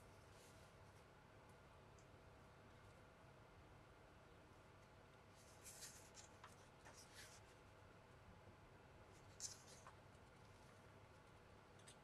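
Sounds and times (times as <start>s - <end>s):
paper pages rustling: 5.4s - 7.4s.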